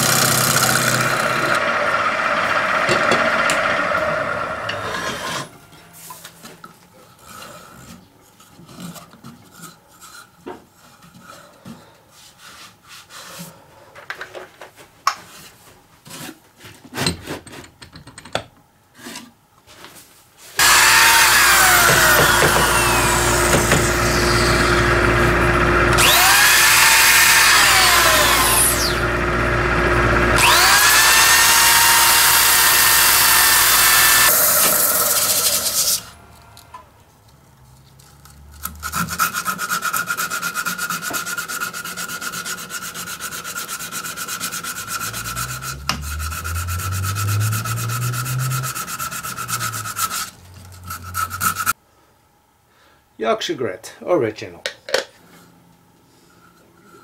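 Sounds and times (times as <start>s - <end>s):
cordless drill whining: 20.6s - 36.7s
sandpaper rasping on wood: 38.7s - 51.8s.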